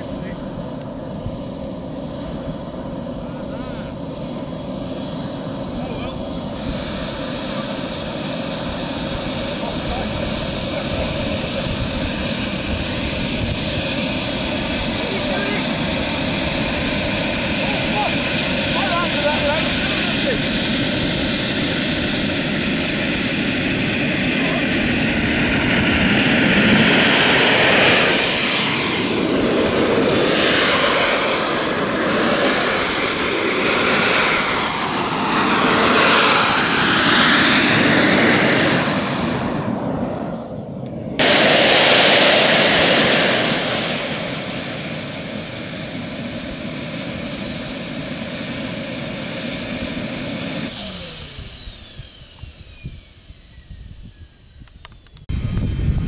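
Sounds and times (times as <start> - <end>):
jet turbine engine running: 0.0 - 56.0.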